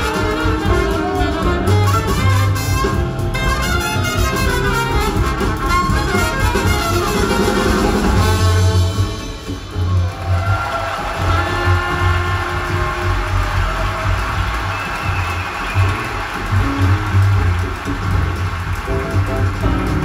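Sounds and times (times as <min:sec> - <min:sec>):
deep bass notes: 0:00.0 - 0:20.0
jazz through loudspeakers: 0:00.0 - 0:20.0.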